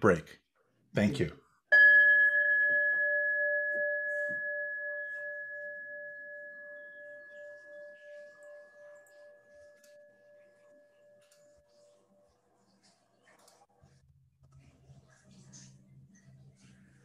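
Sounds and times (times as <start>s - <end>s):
bell ringing: 1.7s - 11.6s.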